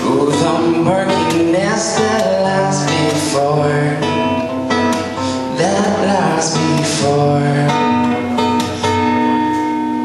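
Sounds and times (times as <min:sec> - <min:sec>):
person singing: 0:00.0 - 0:04.4, 0:05.0 - 0:08.7
acoustic guitar: 0:00.0 - 0:10.0.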